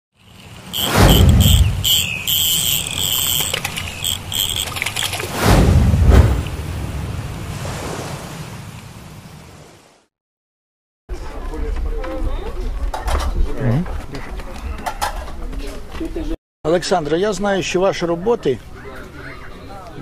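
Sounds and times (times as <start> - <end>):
falling whoosh: 0.8 - 1.8, 5.2 - 8.1
deep boom: 0.9 - 2.0, 5.4 - 7.3.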